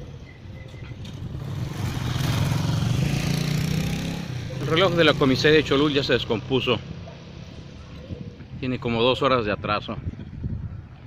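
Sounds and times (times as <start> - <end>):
vehicle engine approaching: 0.9 - 8.6.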